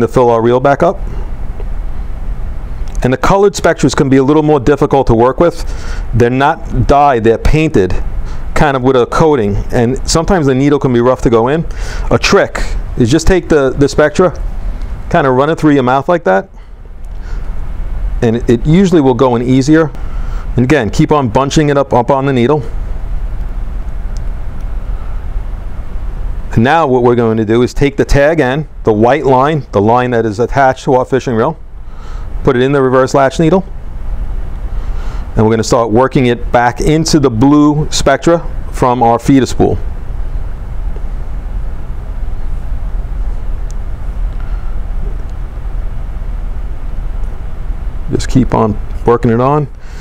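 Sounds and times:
low background rumble: 0.0 - 50.0.

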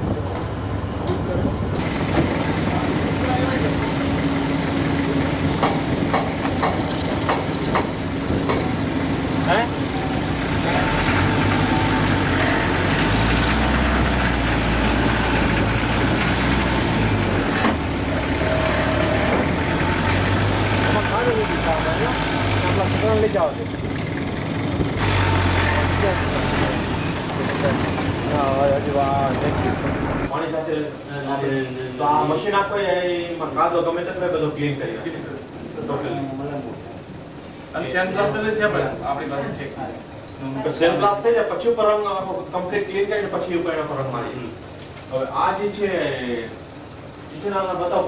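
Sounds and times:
car engine idling: 0.0 - 12.9, 13.6 - 30.3
engine knocks: 0.0 - 30.3.

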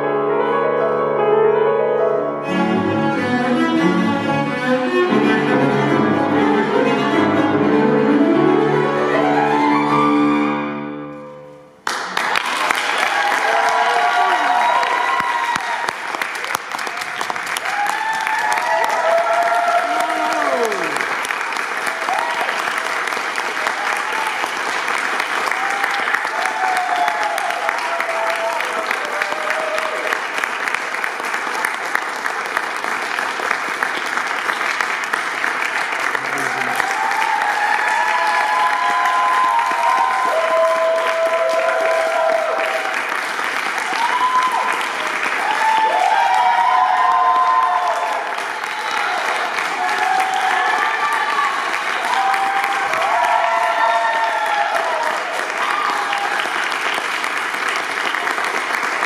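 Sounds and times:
audience applauding: 11.8 - 59.0.

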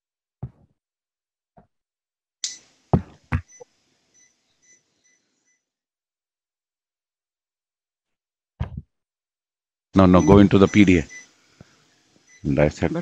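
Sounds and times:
faint electronic beeps: 3.3 - 5.7, 10.0 - 11.4, 12.2 - 13.0.

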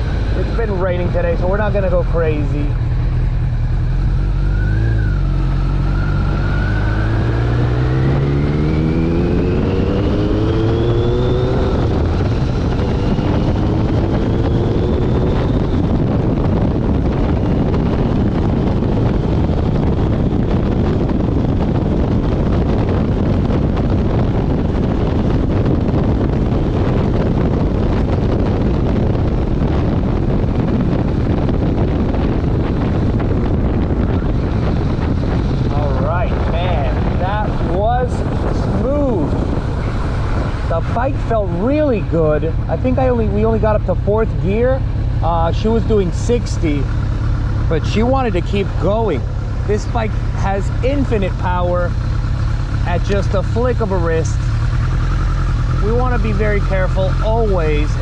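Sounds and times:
motorcycle engine accelerating: 0.0 - 58.0
wind and road noise: 0.0 - 58.0.

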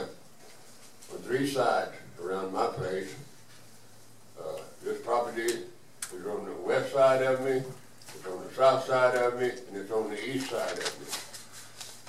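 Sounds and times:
man speaking: 1.1 - 3.3, 4.4 - 11.2.

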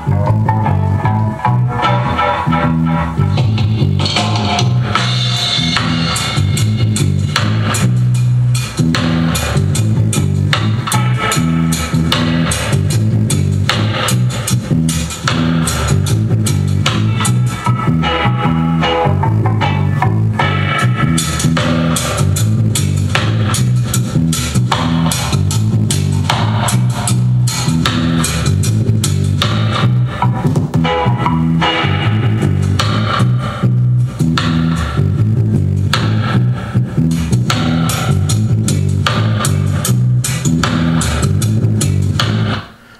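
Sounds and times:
rock song on a soundbar: 0.0 - 42.9.

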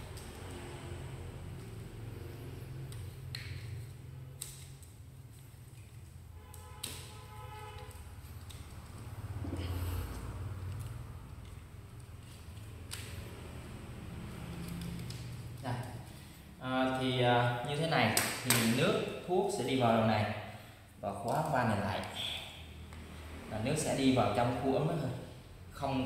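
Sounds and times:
plastic pipe fittings clicking: 2.8 - 7.0.

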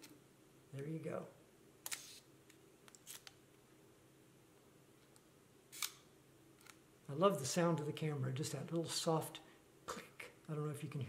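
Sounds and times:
camera shutter click: 5.7 - 6.0.

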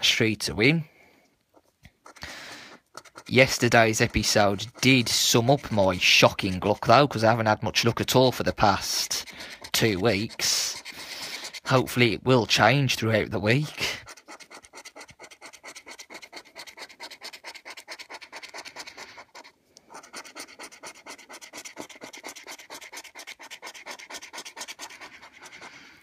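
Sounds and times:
coin scratching scratchcard: 1.5 - 25.8.

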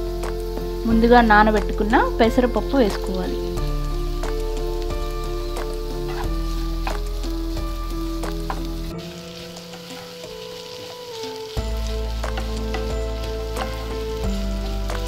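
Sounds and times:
background music drone: 0.0 - 15.0
vegetables sizzling in oil: 0.0 - 15.0
spatula scraping pan: 1.4 - 15.0.

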